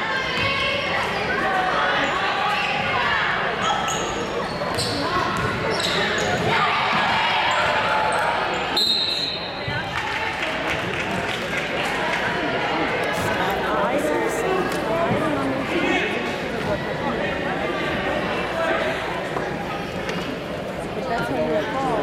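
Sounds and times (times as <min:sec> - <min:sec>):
spectators' voices echoing: 0:00.0 - 0:22.0
sneakers squeaking: 0:03.6 - 0:09.8.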